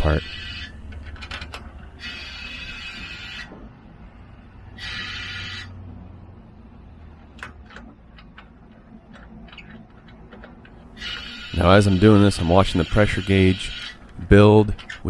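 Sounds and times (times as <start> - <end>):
compressed air hissing: 4.8 - 5.7.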